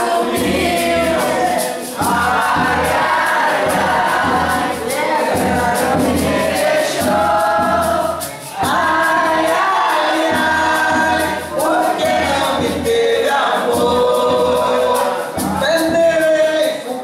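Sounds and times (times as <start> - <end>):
people singing together: 0.0 - 16.3
beaten drum: 0.0 - 16.6
shaker: 0.0 - 17.0.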